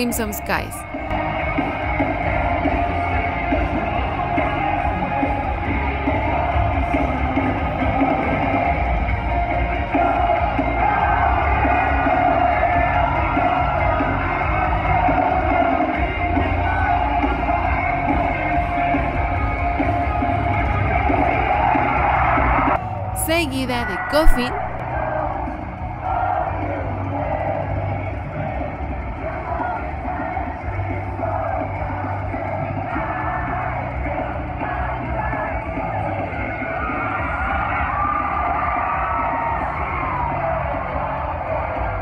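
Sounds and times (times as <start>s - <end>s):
drums: 1.0s - 22.5s
person singing: 23.2s - 24.8s.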